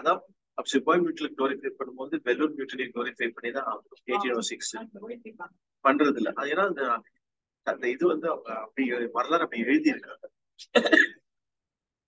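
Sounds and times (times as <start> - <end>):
man speaking: 0.0 - 4.9, 5.8 - 10.8
man clearing throat: 10.7 - 11.3.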